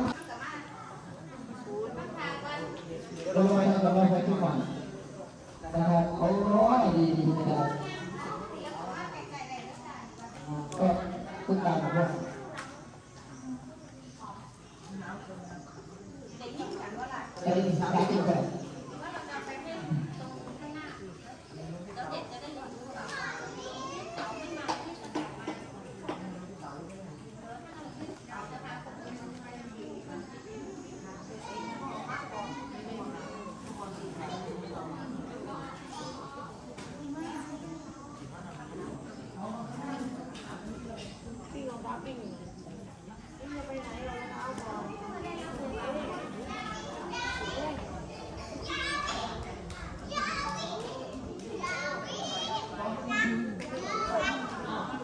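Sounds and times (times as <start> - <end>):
children chattering: 0.0 - 55.0.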